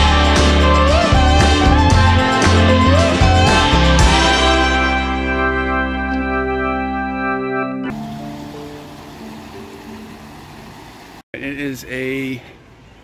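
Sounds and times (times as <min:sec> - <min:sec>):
long held music chords: 0:00.0 - 0:11.2.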